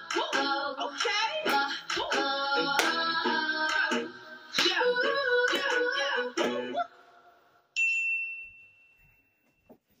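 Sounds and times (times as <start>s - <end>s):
high bell-like ding: 7.8s - 9.7s.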